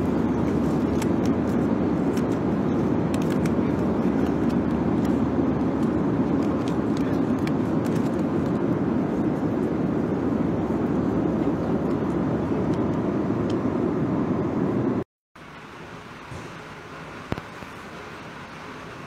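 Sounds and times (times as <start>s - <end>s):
airliner cabin drone in flight: 0.0s - 19.0s.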